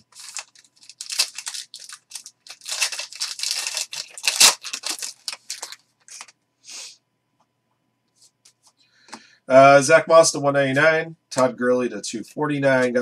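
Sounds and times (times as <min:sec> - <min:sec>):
plastic wrappers tearing and crinkling: 0:00.0 - 0:06.3.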